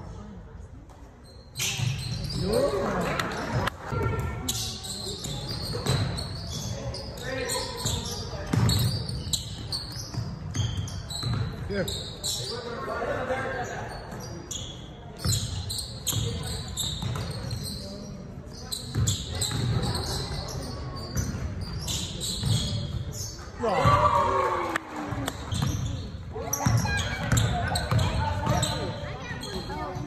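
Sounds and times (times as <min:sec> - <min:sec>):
voices echoing in hall: 0:00.0 - 0:30.0
sneakers squeaking: 0:00.8 - 0:24.3, 0:25.0 - 0:30.0
basketball bouncing: 0:08.4 - 0:08.9, 0:09.5 - 0:11.6, 0:26.5 - 0:28.9.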